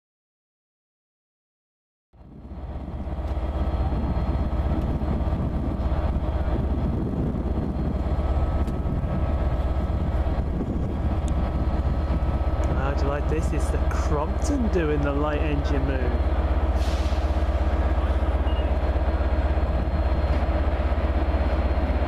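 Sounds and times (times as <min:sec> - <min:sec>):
diesel engines idling: 0:02.2 - 0:22.0.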